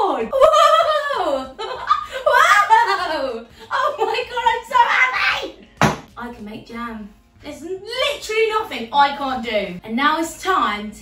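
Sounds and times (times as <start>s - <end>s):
woman exclaiming excitedly: 2.3s - 5.6s
sharp knock: 5.8s - 6.1s.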